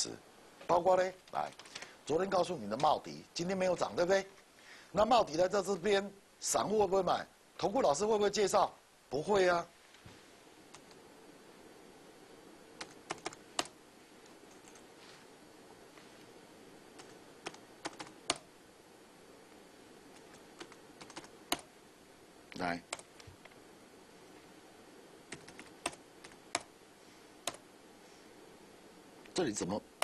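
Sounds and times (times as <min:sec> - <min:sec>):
faint background hum: 0:00.0 - 0:30.0
computer keyboard keystrokes: 0:01.3 - 0:01.9, 0:12.8 - 0:13.7, 0:17.0 - 0:18.4, 0:20.2 - 0:21.7, 0:25.3 - 0:26.7
keyboard keys clicking: 0:20.2 - 0:21.7.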